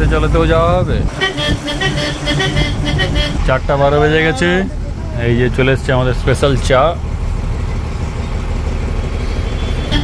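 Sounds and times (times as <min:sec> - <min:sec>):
bus diesel engine rumble: 0:00.0 - 0:10.0.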